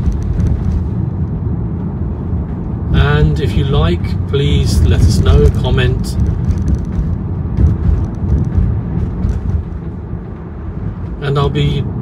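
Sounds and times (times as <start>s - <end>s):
road and tyre noise in car: 0.0s - 12.0s.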